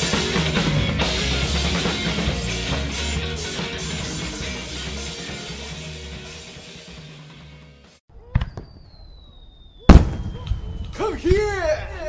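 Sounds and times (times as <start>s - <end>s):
fireworks bangs: 8.2s - 12.0s.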